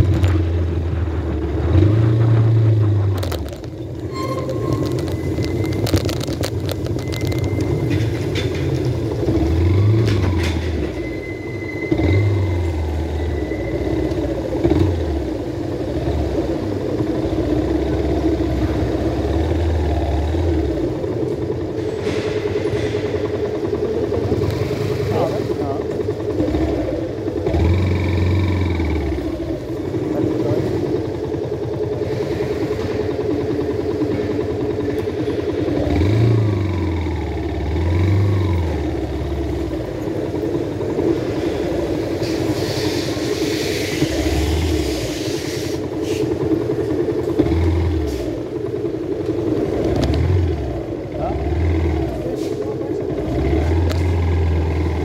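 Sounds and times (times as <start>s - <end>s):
motorcycle engine running: 11.9s - 42.5s.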